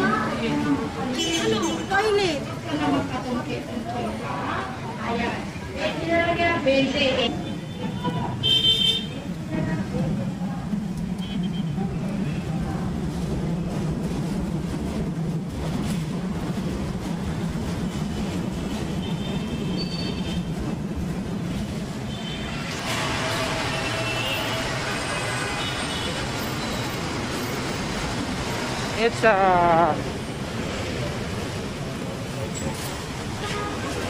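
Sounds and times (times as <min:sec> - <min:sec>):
street traffic hum: 0:00.0 - 0:34.0.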